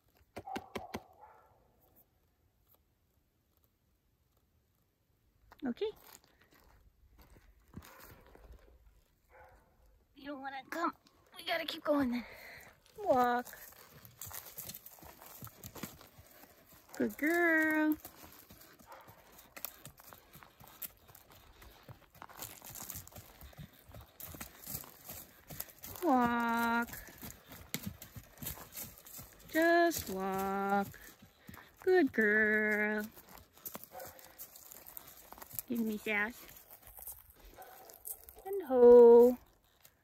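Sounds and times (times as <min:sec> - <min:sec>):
hoof thuds on soft dirt: 0:06.0 - 0:09.6, 0:12.2 - 0:38.4.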